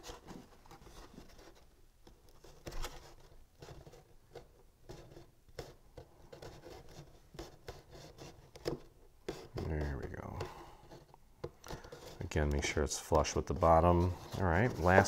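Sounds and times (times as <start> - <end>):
paper rustling: 6.3 - 15.0.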